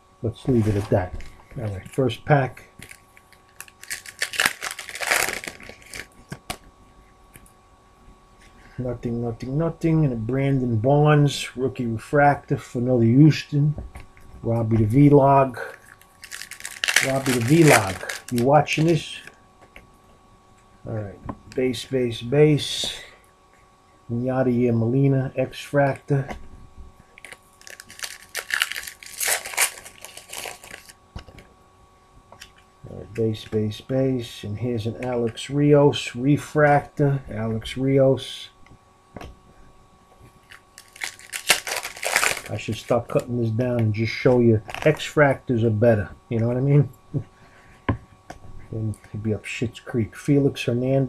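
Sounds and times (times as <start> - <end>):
foil wrapper tearing and crinkling: 2.8 - 6.1, 15.8 - 18.9, 27.2 - 31.0, 40.4 - 42.6, 44.6 - 45.0.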